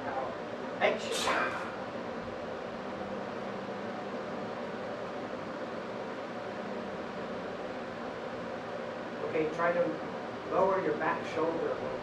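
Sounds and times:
faint ventilation hum: 0.0 - 12.0.

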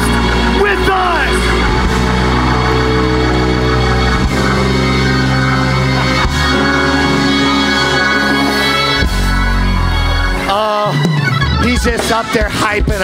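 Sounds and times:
keyboard organ chords: 0.0 - 13.0.

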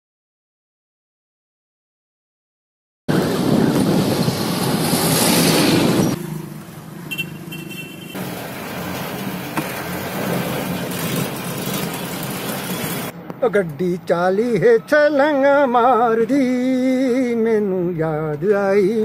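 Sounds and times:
truck engine running: 3.1 - 13.1
road noise: 3.1 - 19.0.

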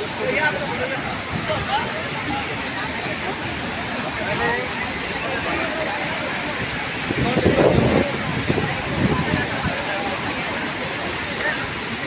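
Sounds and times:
faint voices: 0.0 - 12.0
waterfall rushing: 0.0 - 12.0.

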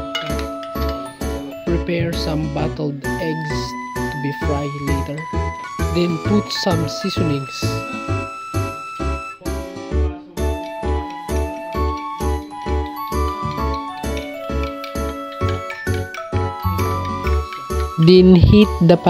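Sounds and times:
background music with steady beat: 0.0 - 19.0.

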